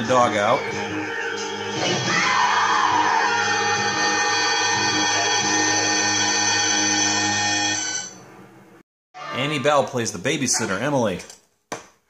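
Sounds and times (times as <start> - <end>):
sustained horror score chord: 3.1 - 8.1.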